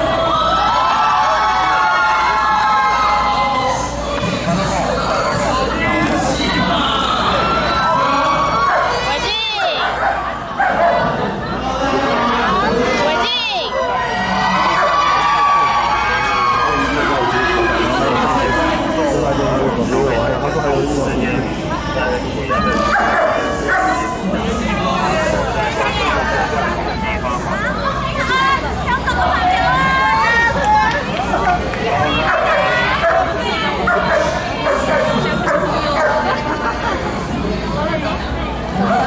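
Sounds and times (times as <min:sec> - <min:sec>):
crowd chatter: 0:00.0 - 0:39.0
people talking: 0:03.0 - 0:39.0.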